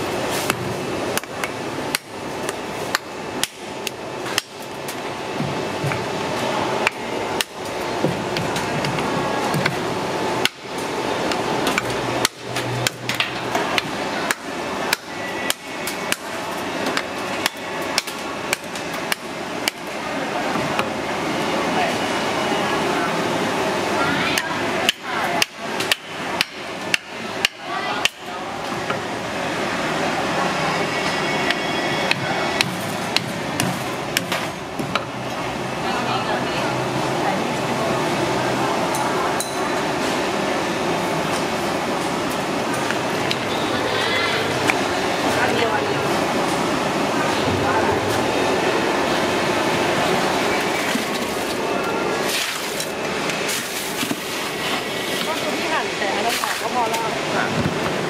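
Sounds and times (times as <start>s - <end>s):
hubbub of voices: 0.0s - 58.0s.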